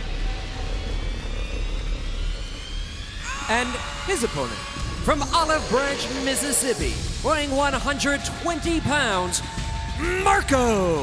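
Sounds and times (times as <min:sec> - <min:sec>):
low rumbling arena noise: 0:00.0 - 0:11.0
ring announcer speaking: 0:03.5 - 0:09.4, 0:10.0 - 0:11.0.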